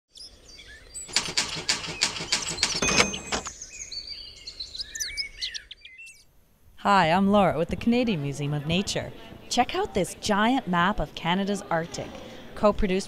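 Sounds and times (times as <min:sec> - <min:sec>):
birds chirping and whistling: 0:00.1 - 0:06.2
rattling run of sharp clicks: 0:01.1 - 0:03.5.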